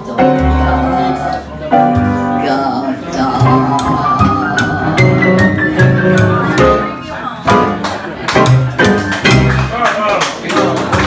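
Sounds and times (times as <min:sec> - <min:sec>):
double bass low notes: 0:00.0 - 0:09.8
woman singing: 0:02.3 - 0:05.6.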